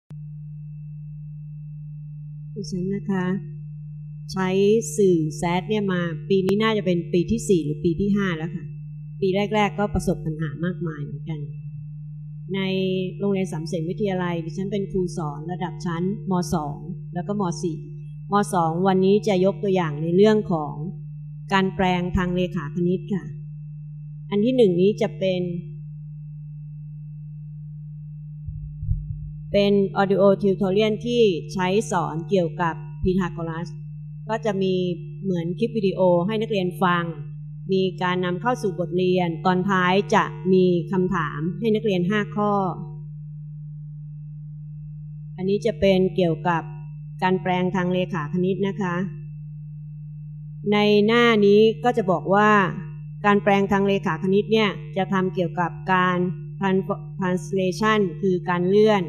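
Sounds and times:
low electrical hum: 0.1 - 59.0.

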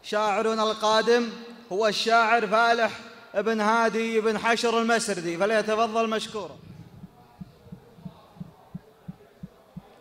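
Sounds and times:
soft low thumps: 6.5 - 10.0.

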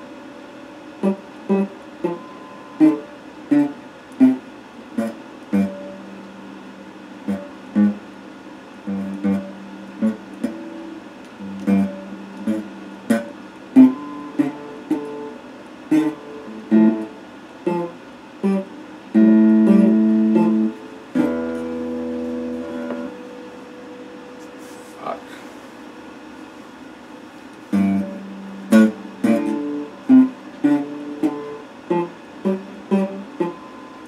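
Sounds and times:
electric guitar picking: 1.0 - 24.9, 27.5 - 34.0.

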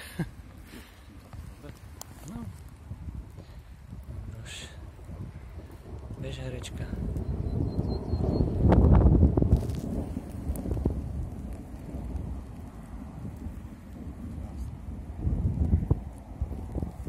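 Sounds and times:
wind buffeting microphone: 0.0 - 17.0
grass rustling and clicking: 0.5 - 4.1, 8.7 - 14.8.

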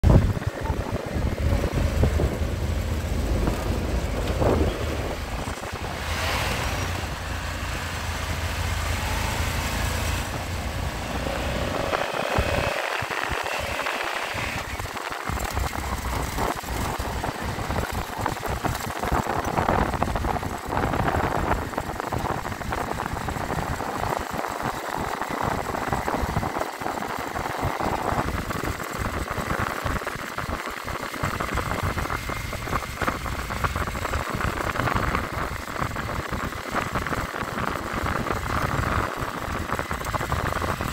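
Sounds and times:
wind buffeting microphone: 0.0 - 7.2, 10.3 - 40.9
motorcycle engines running: 0.0 - 40.9.

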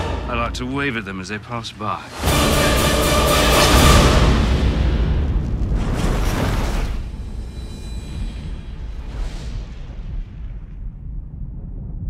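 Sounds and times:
deep boom with low rumble: 3.8 - 12.0.

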